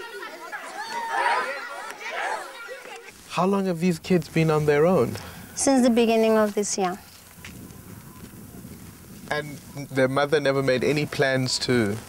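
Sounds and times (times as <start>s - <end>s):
children chattering: 0.0s - 8.6s.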